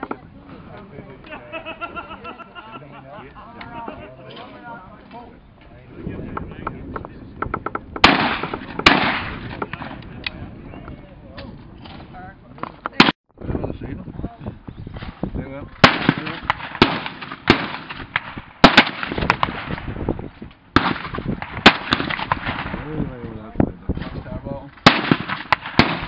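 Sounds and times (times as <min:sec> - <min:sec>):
shotgun shots with echo: 0:08.0 - 0:10.0, 0:15.8 - 0:20.0, 0:20.8 - 0:22.9, 0:24.8 - 0:26.0.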